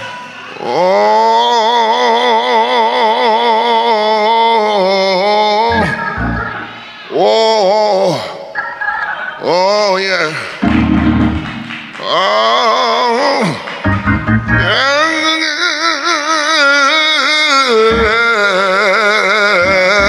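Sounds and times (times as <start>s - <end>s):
organ chords: 5.7s - 6.9s, 10.6s - 12.2s, 13.8s - 15.7s, 17.8s - 20.0s
man singing wordless moan: 14.6s - 20.0s.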